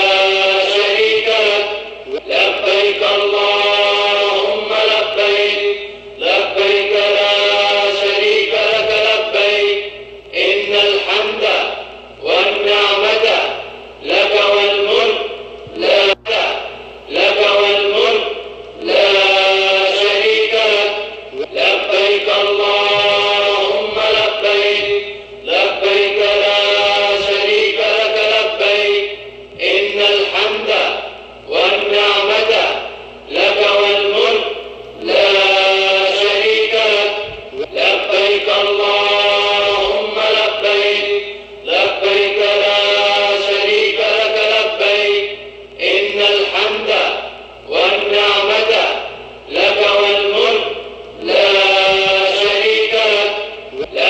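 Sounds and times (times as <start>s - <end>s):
men chanting together: 0.0s - 54.0s.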